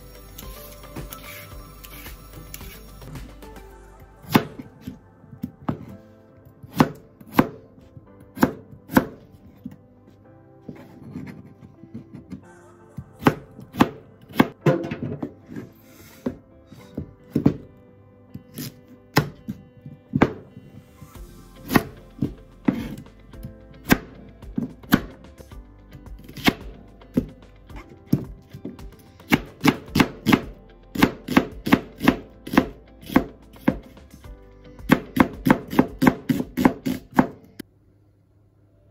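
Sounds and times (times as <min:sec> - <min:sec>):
knife chopping on cutting board: 0:06.7 - 0:07.6, 0:08.4 - 0:09.2, 0:13.2 - 0:14.6, 0:29.3 - 0:33.9, 0:34.9 - 0:37.4.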